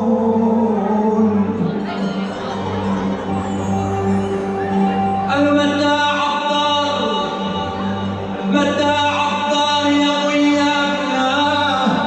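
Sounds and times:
man singing into microphone: 0.0s - 2.6s, 3.3s - 12.0s
keyboard accompaniment: 0.0s - 12.0s.

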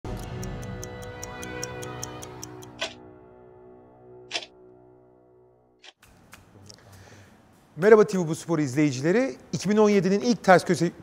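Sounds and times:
stopwatch ticking: 0.1s - 3.0s
sustained synth chord: 0.1s - 5.8s.

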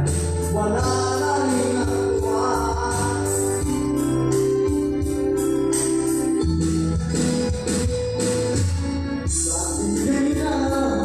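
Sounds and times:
steady beat: 0.0s - 10.9s
ballad backing track: 0.0s - 11.0s
keyboard chords: 0.0s - 11.0s.

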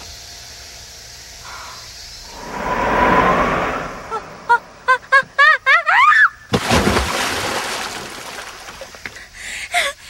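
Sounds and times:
rushing whoosh: 2.2s - 5.1s.

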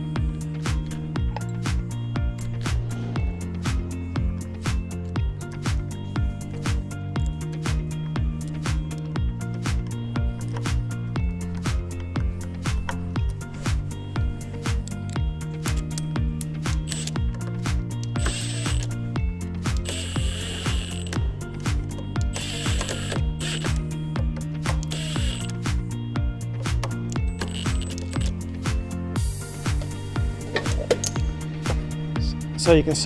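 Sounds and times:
background music with steady beat: 0.0s - 33.0s
impact driver running bolts: 16.7s - 17.2s, 18.2s - 18.9s, 19.8s - 21.2s, 22.2s - 23.8s, 24.6s - 25.6s, 27.3s - 28.3s.

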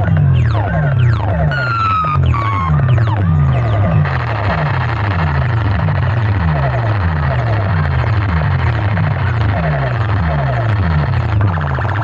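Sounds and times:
deep bass pulse: 0.0s - 12.0s
loud electronic dance music: 0.0s - 12.0s
high falling tone: 0.4s - 5.2s.

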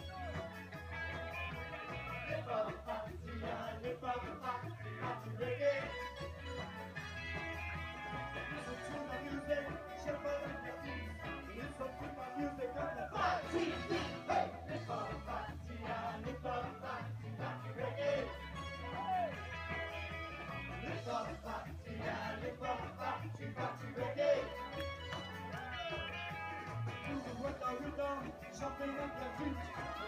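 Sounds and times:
ska band playing: 0.0s - 30.0s.

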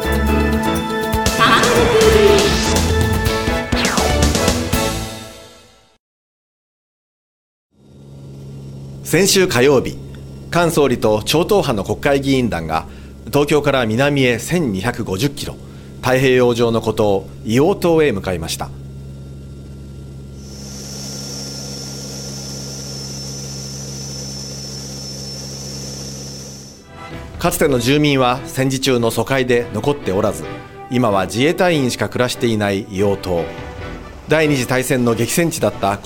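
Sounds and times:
turboprop engines droning: 7.8s - 27.5s.

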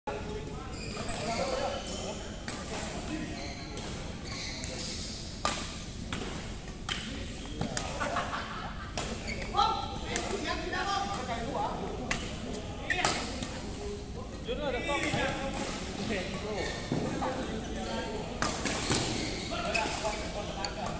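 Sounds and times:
people talking: 6.9s - 20.9s.

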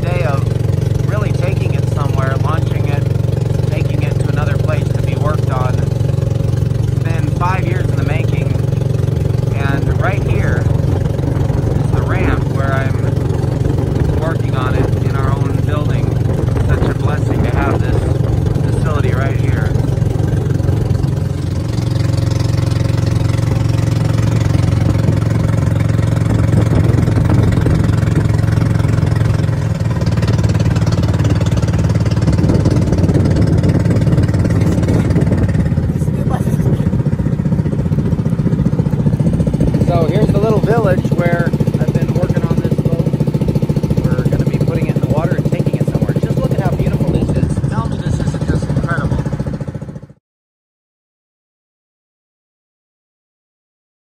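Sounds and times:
boat engine droning: 0.0s - 50.2s.

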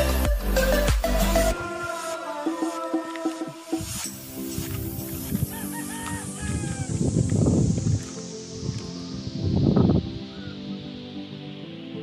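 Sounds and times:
background music: 0.0s - 12.0s
rooster crowing: 5.4s - 7.1s.

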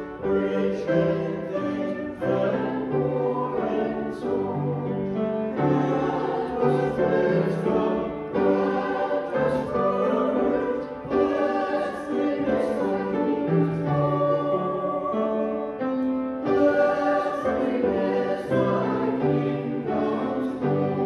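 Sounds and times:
congregation singing a hymn: 0.0s - 21.0s
piano accompaniment: 0.0s - 21.0s.

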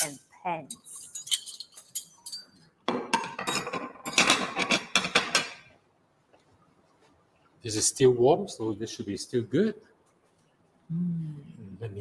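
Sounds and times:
plates and cutlery clinking: 0.0s - 5.7s.

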